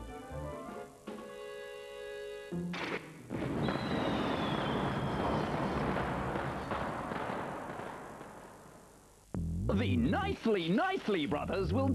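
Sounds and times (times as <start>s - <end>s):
falling high whistle: 3.6s - 5.6s.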